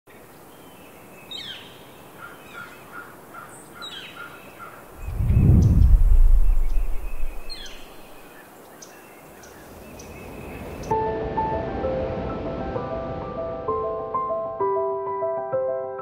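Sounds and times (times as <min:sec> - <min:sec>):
birds chirping: 0:00.5 - 0:10.9
deep low rumble: 0:05.0 - 0:08.2.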